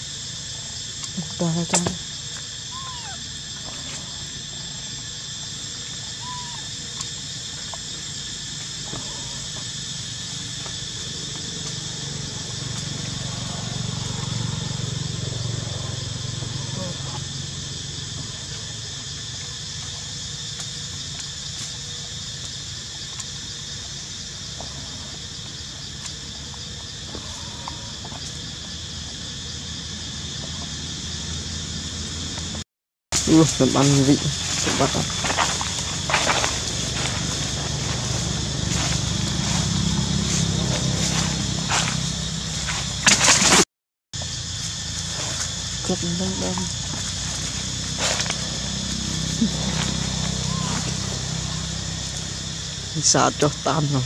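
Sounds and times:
insects chorus: 0.0 - 43.6, 44.2 - 54.0.

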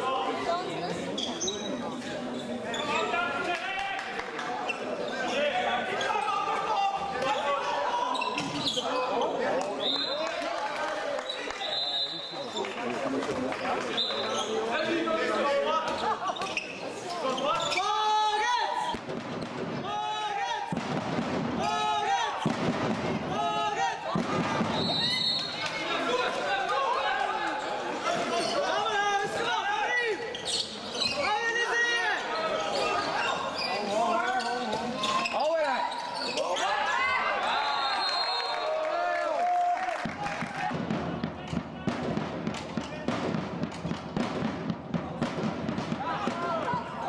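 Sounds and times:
shoe squeaks: 0.9 - 3.2, 8.1 - 10.2, 13.6 - 14.8, 15.9 - 18.1, 27.6 - 28.8, 30.2 - 31.6, 32.3 - 36.7
people shouting in a hall: 5.2 - 11.7, 17.2 - 19.0, 19.8 - 20.8, 21.5 - 22.6, 23.2 - 30.3, 31.0 - 41.5, 45.2 - 47.0.

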